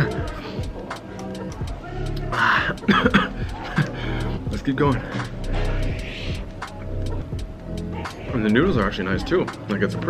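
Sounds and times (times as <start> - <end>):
background music with ticking beat: 0.0 - 10.0.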